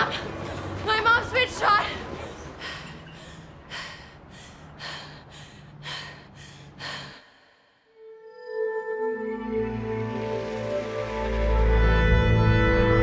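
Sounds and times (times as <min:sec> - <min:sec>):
woman breathing heavily: 0:02.1 - 0:08.0.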